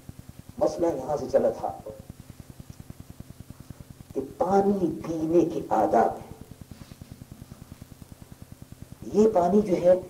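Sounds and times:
low pulsing buzz: 0:00.0 - 0:10.0
man speaking: 0:00.6 - 0:02.0, 0:04.2 - 0:06.4, 0:09.0 - 0:10.0.

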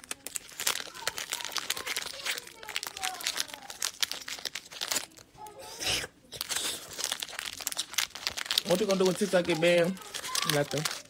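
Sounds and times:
crinkling handling noise: 0:00.0 - 0:05.6, 0:06.3 - 0:11.0.

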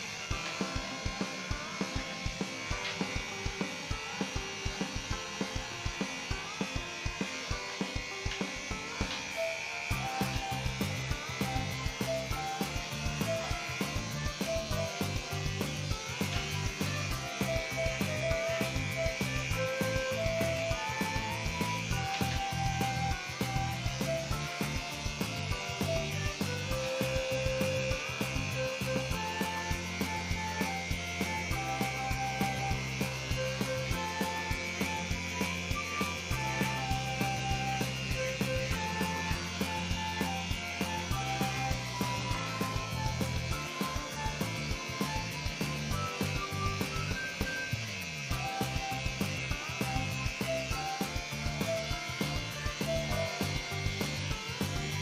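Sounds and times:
background music: 0:00.0 - 0:55.0
electric clippers buzzing: 0:00.0 - 0:55.0.

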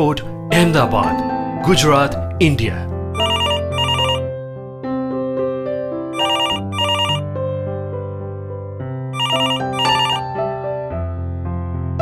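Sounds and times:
telephone ringing: 0:03.2 - 0:04.3, 0:06.2 - 0:07.2, 0:09.2 - 0:10.3.

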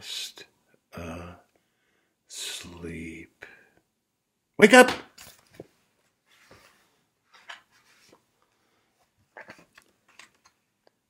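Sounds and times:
book page turning: 0:05.2 - 0:08.3, 0:09.2 - 0:10.6.

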